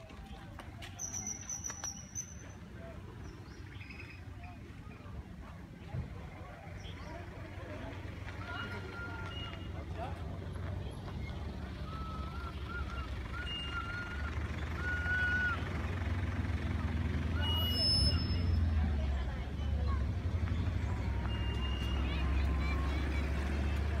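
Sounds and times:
faint distant voices: 0.0 - 24.0
thin whistled calls: 0.9 - 2.6, 3.2 - 4.7, 11.2 - 15.7, 17.4 - 18.7.

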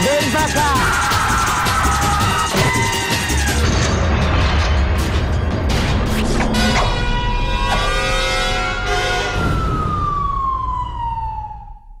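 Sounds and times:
siren wail: 0.4 - 3.9, 6.5 - 12.0.

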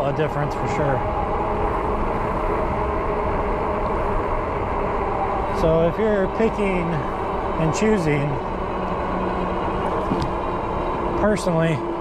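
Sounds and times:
tire road hum on asphalt: 0.0 - 12.0.

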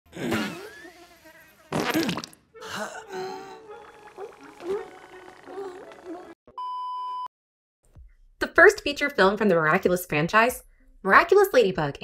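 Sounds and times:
cartoon fart sound effects: 0.1 - 1.1, 1.7 - 2.5.

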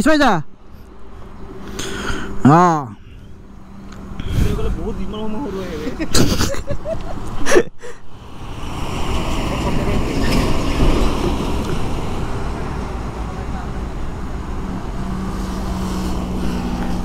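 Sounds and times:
steady traffic noise: 0.0 - 17.0
truck passing on highway: 8.1 - 17.0.

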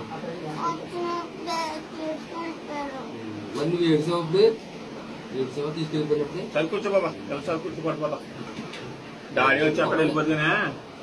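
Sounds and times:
boy's high-pitched voice: 0.6 - 3.1.

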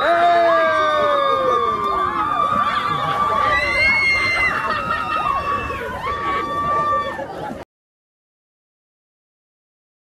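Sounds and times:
women screaming and cheering: 0.0 - 7.4.

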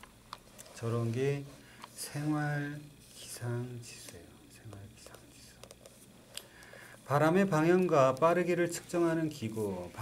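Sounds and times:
person speaking: 0.6 - 6.0, 7.0 - 10.0.

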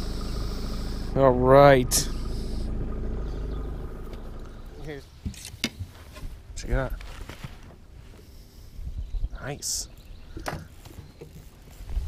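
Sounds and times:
low rumble: 0.0 - 5.0.

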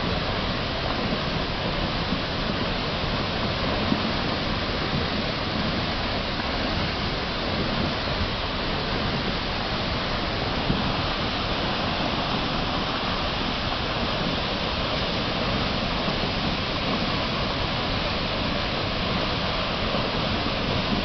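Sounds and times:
flood torrent roaring: 0.0 - 21.0.

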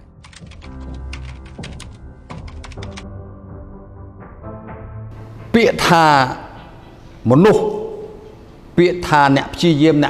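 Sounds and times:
music with held low notes: 0.0 - 7.2.

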